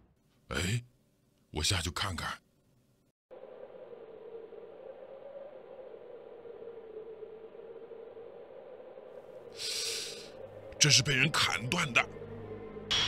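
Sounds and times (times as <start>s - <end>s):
quiet humming drone: 3.3s - 11.4s.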